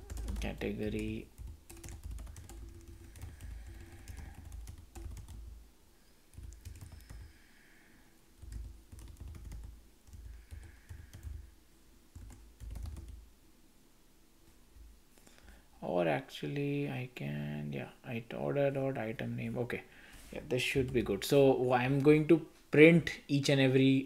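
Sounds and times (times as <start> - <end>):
typing on computer keyboard: 0.0 - 5.5, 6.3 - 7.3, 8.4 - 11.4, 12.1 - 13.2.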